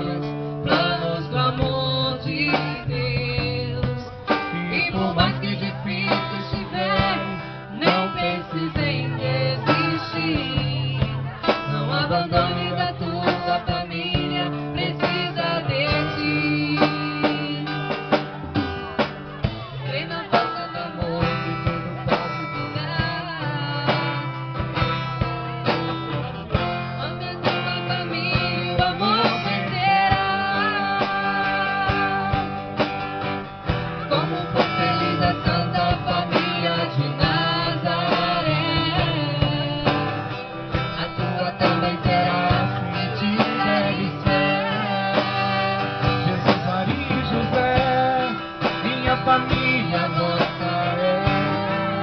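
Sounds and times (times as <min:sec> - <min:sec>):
man and woman singing: 0:00.0 - 0:25.0, 0:26.5 - 0:52.0
acoustic guitar strumming: 0:00.0 - 0:52.0
drum kit: 0:00.0 - 0:52.0.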